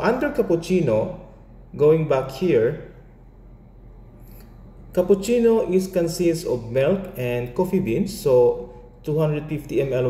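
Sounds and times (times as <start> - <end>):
person speaking: 0.0 - 3.0, 4.9 - 10.0
low steady hiss: 0.0 - 10.0.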